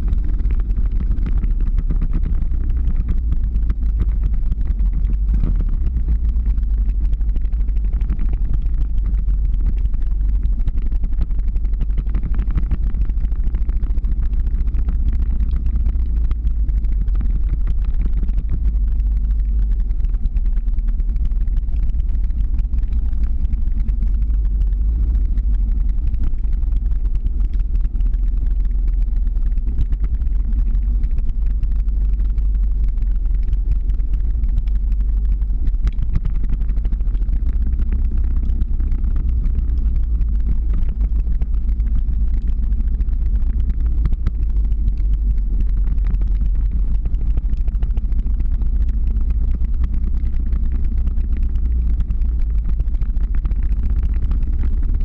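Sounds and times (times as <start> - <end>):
vehicle engine and road noise: 0.0 - 55.0.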